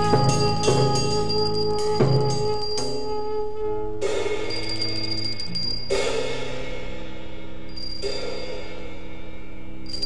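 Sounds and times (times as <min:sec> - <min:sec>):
cymbal struck: 0:00.0 - 0:03.0, 0:05.8 - 0:09.8
double bass: 0:00.0 - 0:03.4
saxophone and trombone notes: 0:00.0 - 0:04.4.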